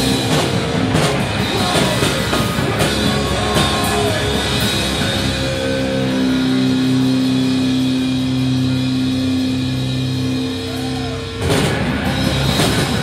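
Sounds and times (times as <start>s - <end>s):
drums and guitar: 0.0s - 13.0s
electric guitar sustained note: 0.0s - 13.0s.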